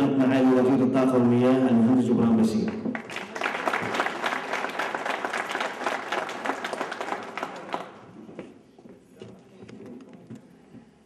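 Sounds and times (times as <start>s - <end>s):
audience applauding: 2.7s - 8.2s.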